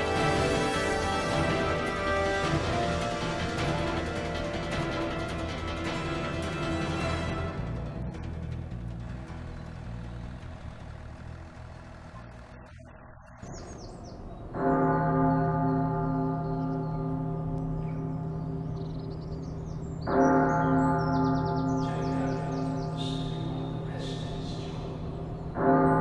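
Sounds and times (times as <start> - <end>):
birds chirping: 0.0 - 26.0
church bell tolling: 14.2 - 26.0.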